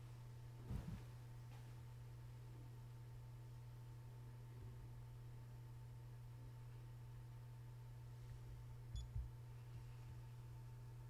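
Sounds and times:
steady low hum: 0.0 - 11.0
soft low thumps: 0.6 - 1.2.

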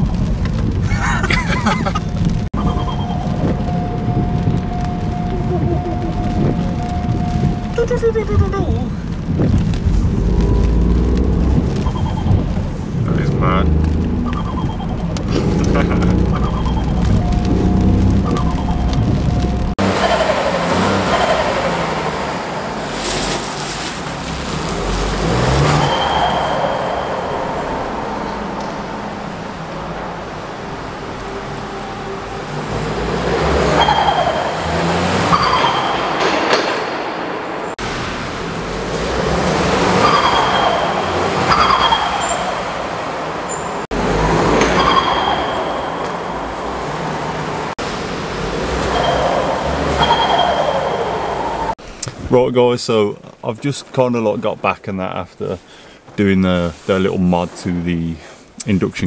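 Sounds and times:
car engine revving with echo: 9.9 - 51.8.

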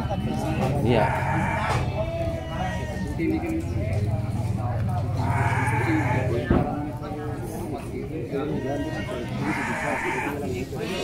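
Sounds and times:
goats bleating: 0.0 - 3.4, 5.2 - 6.5, 8.4 - 11.0.

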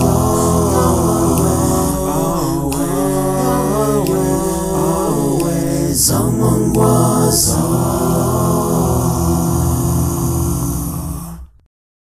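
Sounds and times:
a cappella voices holding chord: 0.0 - 11.6.

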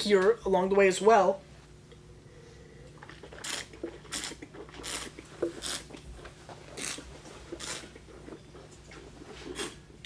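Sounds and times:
person slurping wine: 3.0 - 5.9, 9.4 - 9.8.

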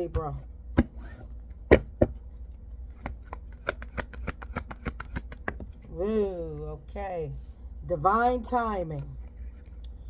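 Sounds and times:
cards being shuffled: 2.2 - 5.9.

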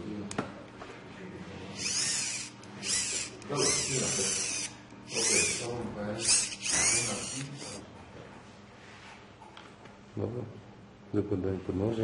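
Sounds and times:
small electric motor whirring: 1.7 - 7.8.

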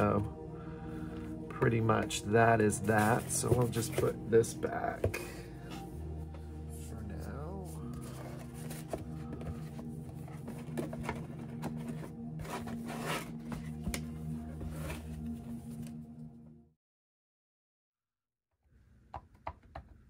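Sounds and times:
ambient electronic music: 0.0 - 16.8.

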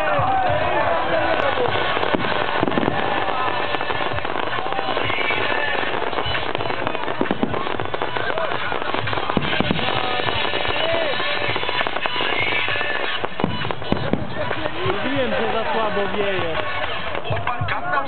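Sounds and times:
fireworks bangs: 0.0 - 18.0
fireworks crackling and popping: 0.0 - 18.0.

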